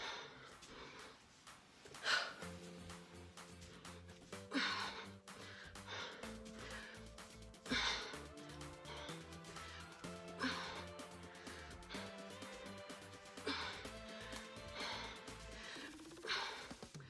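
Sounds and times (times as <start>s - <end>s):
music with bass beat: 0.0s - 17.0s.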